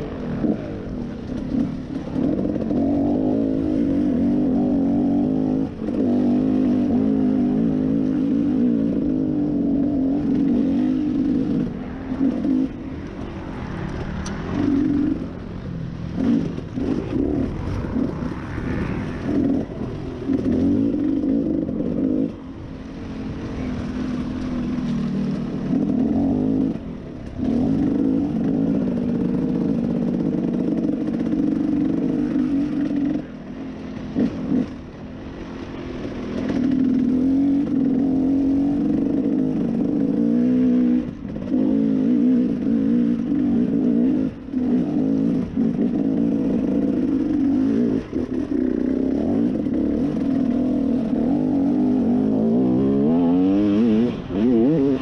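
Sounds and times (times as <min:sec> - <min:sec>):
dirt bike engine revving: 0:00.0 - 0:55.0.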